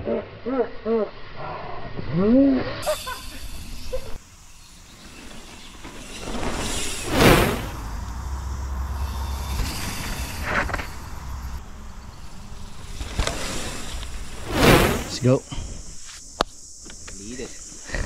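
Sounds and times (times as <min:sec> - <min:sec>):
mountain bike passing by: 0:02.8 - 0:15.4
tyres rolling on dirt: 0:04.2 - 0:15.4.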